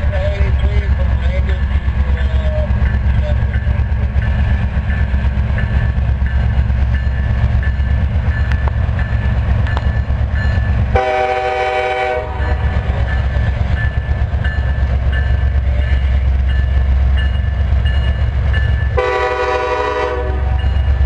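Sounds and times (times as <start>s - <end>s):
train engine rumble: 0.0s - 21.0s
locomotive air horn blasts: 10.9s - 12.7s, 19.0s - 20.6s.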